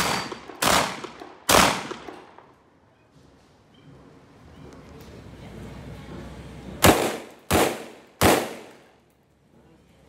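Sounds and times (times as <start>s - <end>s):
gunshots with echo: 0.0s - 2.2s, 6.8s - 8.8s.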